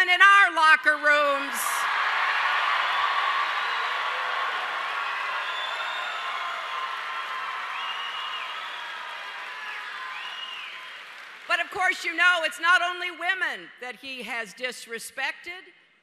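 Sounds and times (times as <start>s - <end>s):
crowd cheering and applauding: 1.4s - 11.9s.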